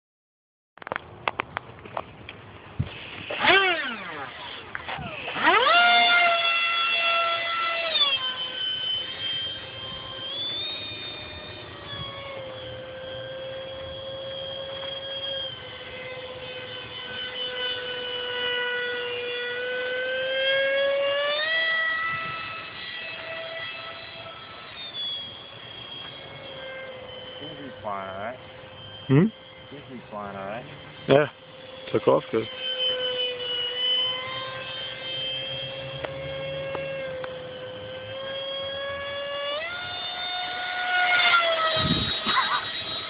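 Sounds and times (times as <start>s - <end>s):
electric ducted fan whine: 0.8s - 43.0s.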